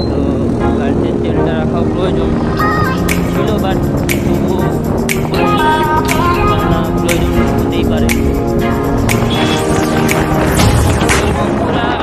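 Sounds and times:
song with sung vocals: 0:02.6 - 0:10.3.

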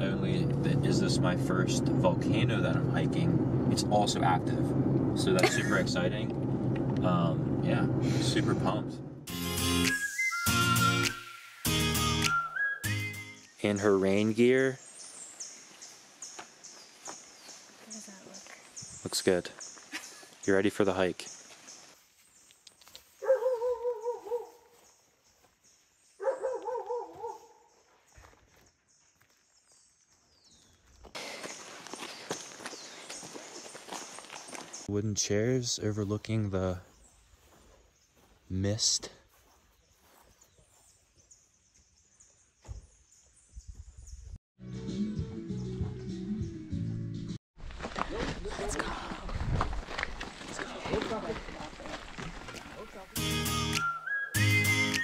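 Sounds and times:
people talking: 0:00.0 - 0:06.3, 0:07.0 - 0:09.0, 0:34.9 - 0:36.8, 0:50.6 - 0:52.0
background music: 0:09.3 - 0:13.5, 0:53.2 - 0:55.0
footsteps on gravel: 0:15.2 - 0:20.5, 0:21.2 - 0:34.9, 0:36.7 - 0:41.2, 0:47.6 - 0:53.3.

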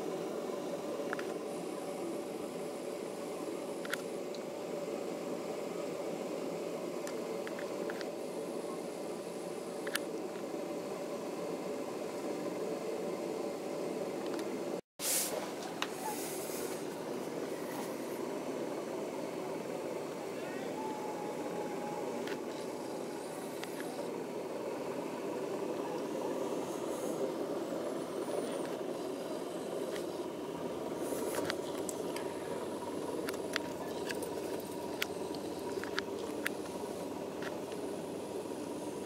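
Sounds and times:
train carriage rumble and hum: 0:15.4 - 0:39.0.

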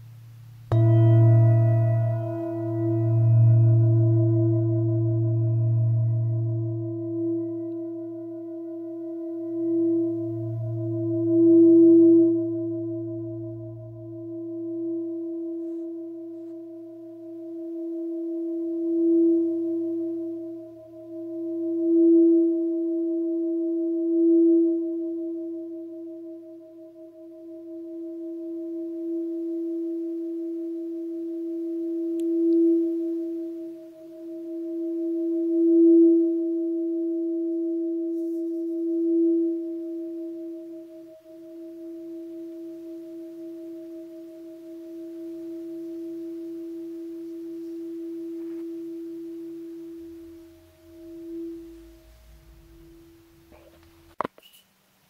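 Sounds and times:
singing bowl ringing: 0:00.7 - 0:53.5.

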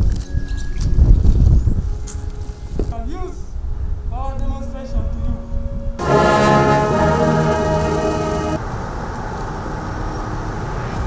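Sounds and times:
brass band chord: 0:06.0 - 0:08.6.

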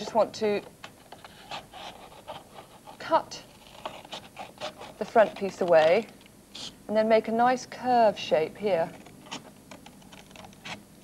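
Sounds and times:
paper rustling: 0:01.1 - 0:06.1
scissors snipping paper: 0:03.6 - 0:06.1.

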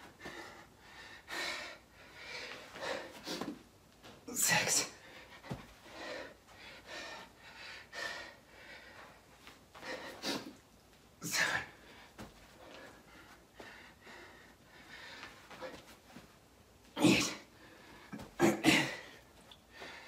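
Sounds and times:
man panting: 0:00.0 - 0:03.6, 0:04.4 - 0:09.2, 0:09.8 - 0:10.5, 0:11.2 - 0:15.9.

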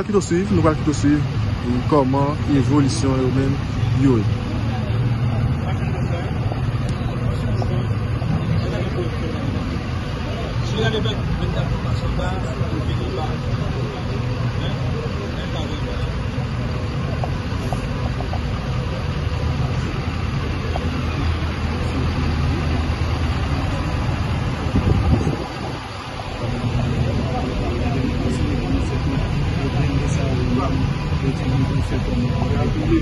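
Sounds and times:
armoured vehicle engine idling: 0:00.0 - 0:33.0.

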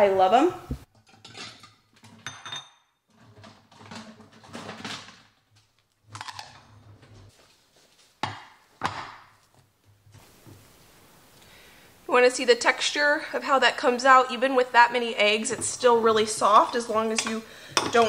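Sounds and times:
glass dishes clinking: 0:01.2 - 0:03.0
rustling: 0:03.1 - 0:11.4.

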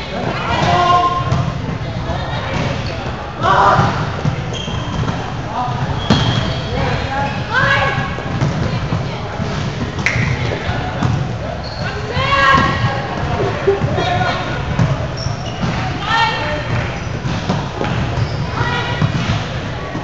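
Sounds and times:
sneakers squeaking on court: 0:02.5 - 0:03.2, 0:03.8 - 0:20.0.

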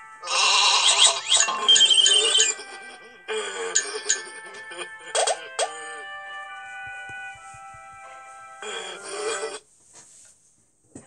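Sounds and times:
background music: 0:00.0 - 0:09.7.

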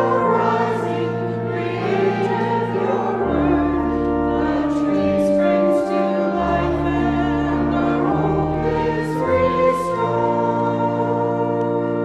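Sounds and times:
choir singing a hymn: 0:00.0 - 0:12.0
organ: 0:00.0 - 0:12.0.

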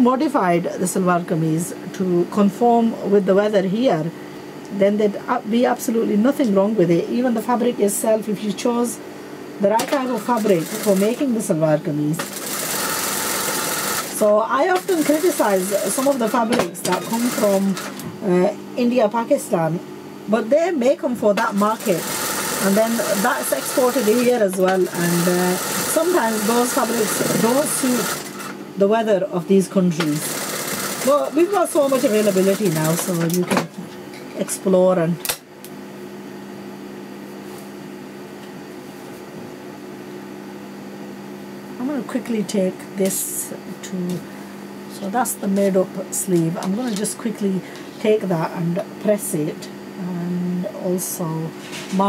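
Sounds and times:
industrial sewing machine running: 0:09.8 - 0:11.3, 0:12.2 - 0:18.0, 0:21.4 - 0:28.6, 0:30.0 - 0:33.4
person speaking: 0:14.2 - 0:28.2, 0:31.0 - 0:35.2, 0:44.9 - 0:52.0.

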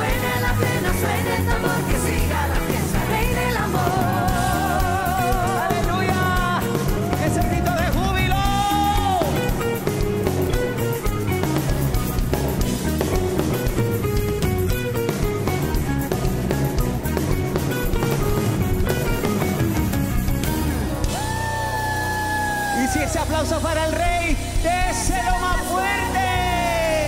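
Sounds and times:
drums: 0:00.0 - 0:27.0
electric guitar melody: 0:00.0 - 0:27.0.

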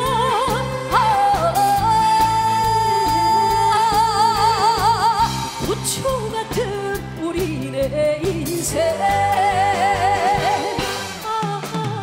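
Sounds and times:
band playing: 0:00.0 - 0:12.0
steady drum beat: 0:00.0 - 0:12.0
woman singing: 0:00.0 - 0:12.0.

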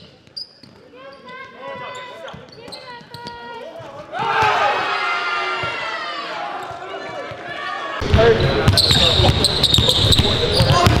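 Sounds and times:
voices in hall: 0:00.8 - 0:11.0.

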